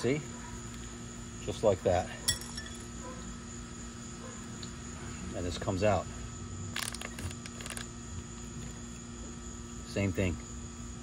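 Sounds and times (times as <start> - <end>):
sharp metallic clink: 2.3 - 2.9.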